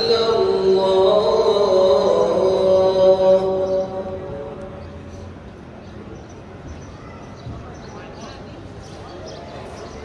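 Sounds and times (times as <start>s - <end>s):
man chanting over loudspeakers: 0.0s - 5.2s
low courtyard hum: 0.0s - 10.0s.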